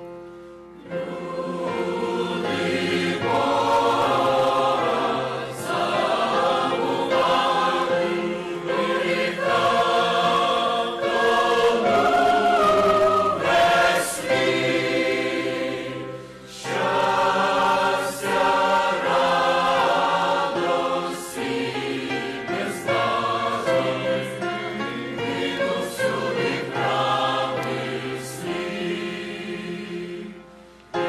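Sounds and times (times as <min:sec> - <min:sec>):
mixed choir singing: 0:00.8 - 0:31.0.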